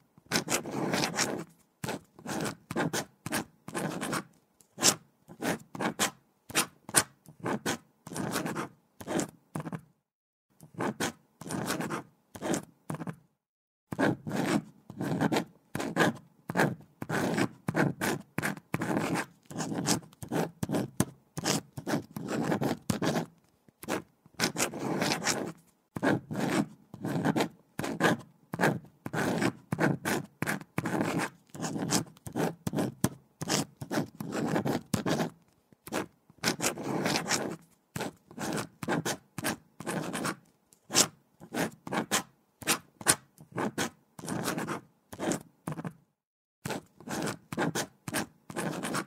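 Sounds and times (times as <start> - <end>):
pen writing on paper: 0.2 - 9.9, 10.6 - 13.2, 13.9 - 46.0, 46.6 - 49.0.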